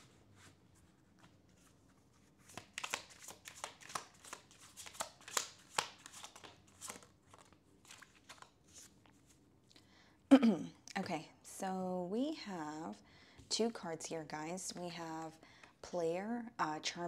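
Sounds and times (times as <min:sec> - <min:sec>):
cards being shuffled: 0:00.0 - 0:09.4.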